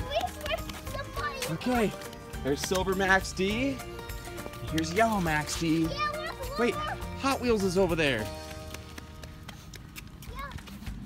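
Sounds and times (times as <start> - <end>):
child saying yeah: 0.0 - 1.6, 5.8 - 7.1, 10.2 - 10.6
footsteps on concrete: 0.0 - 11.0.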